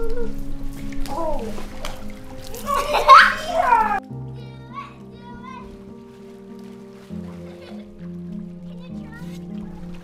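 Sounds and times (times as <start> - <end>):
soft music of long held notes: 0.0 - 10.0
child shrieking and shouting: 2.6 - 4.0.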